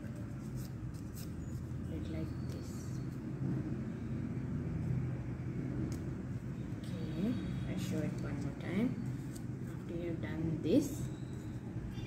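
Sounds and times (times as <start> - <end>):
paper being folded and creased: 0.0 - 1.9
low background rumble: 0.0 - 12.0.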